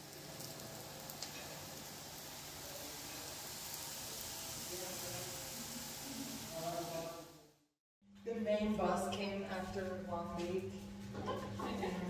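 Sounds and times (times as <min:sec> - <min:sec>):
pancakes sizzling in pans: 0:00.0 - 0:07.4.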